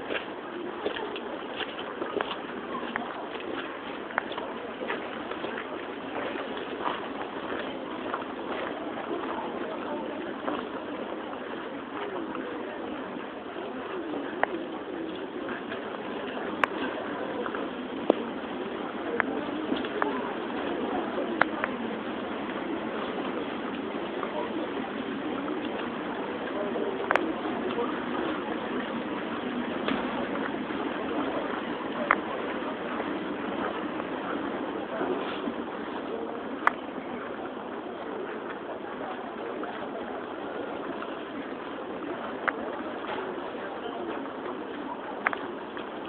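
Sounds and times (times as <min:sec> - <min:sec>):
distant indistinct voices: 0:00.0 - 0:46.0
outdoor background hubbub: 0:00.0 - 0:46.0
steady background hiss: 0:00.0 - 0:46.0.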